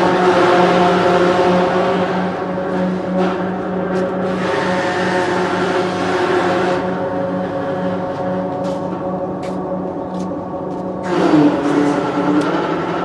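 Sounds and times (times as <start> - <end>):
machine motor humming: 0.0 - 13.0.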